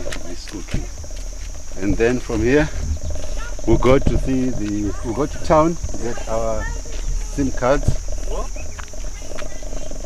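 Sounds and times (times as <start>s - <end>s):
insects droning: 0.0s - 10.0s
voices: 0.0s - 10.0s.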